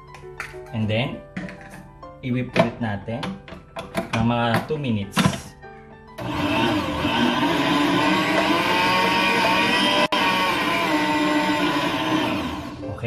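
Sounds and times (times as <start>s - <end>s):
stand mixer motor whine: 6.2s - 12.8s.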